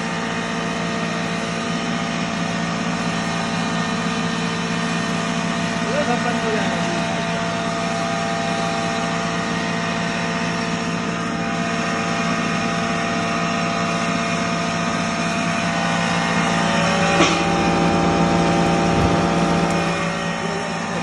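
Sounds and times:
flour mill motor humming: 0:00.0 - 0:21.0.

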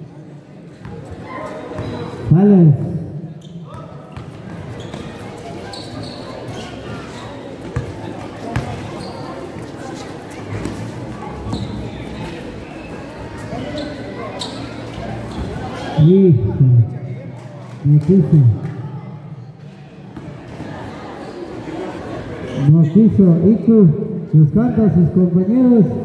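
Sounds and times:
hum of spectators: 0:00.0 - 0:26.0
man's loud voice: 0:02.3 - 0:03.1, 0:16.0 - 0:17.0
basketball bouncing on concrete: 0:08.5 - 0:08.8.

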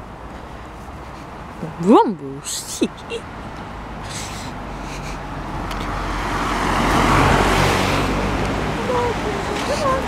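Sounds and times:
car approaching: 0:00.0 - 0:10.0.

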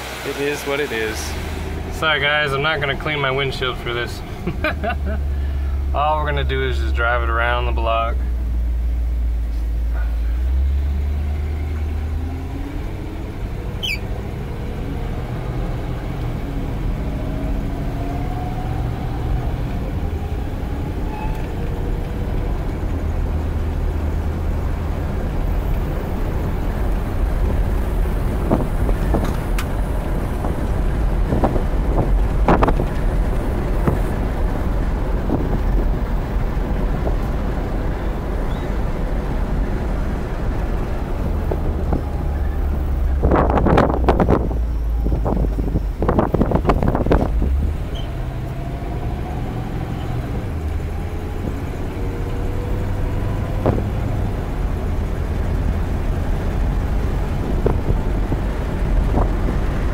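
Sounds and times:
car engine accelerating: 0:00.0 - 0:59.9
road noise inside car: 0:00.0 - 0:59.9.

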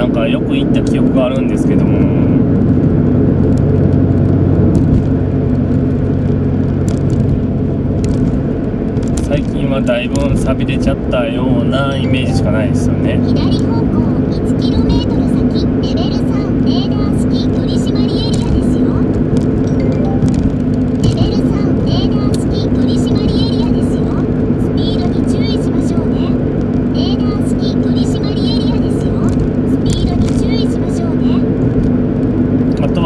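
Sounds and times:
car engine and road noise: 0:00.0 - 0:33.0
high chirps and clicks: 0:19.4 - 0:22.6.

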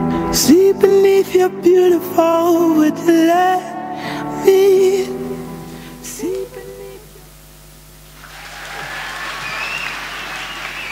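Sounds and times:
audience applauding: 0:08.2 - 0:10.9.

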